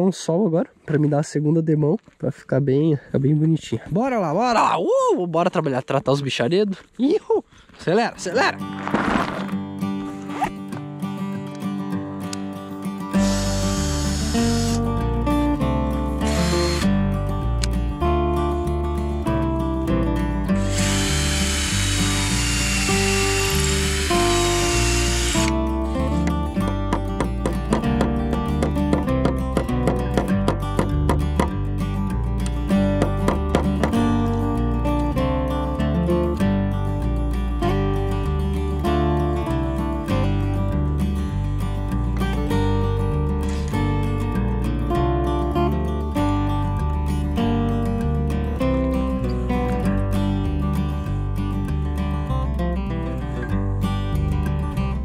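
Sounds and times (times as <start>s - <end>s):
acoustic guitar music with bass: 8.2s - 55.0s
cordless drill driving screws: 13.1s - 14.8s, 16.2s - 16.9s, 20.6s - 25.7s.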